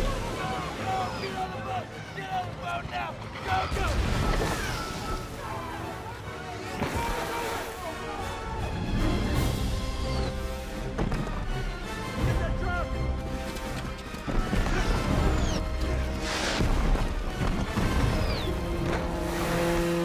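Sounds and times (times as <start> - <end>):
film score music: 0.0 - 20.0.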